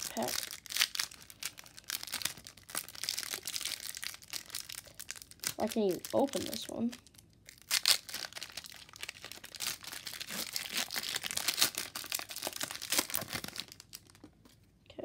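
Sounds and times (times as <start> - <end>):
wrapper crinkling and tearing: 0.0 - 14.2.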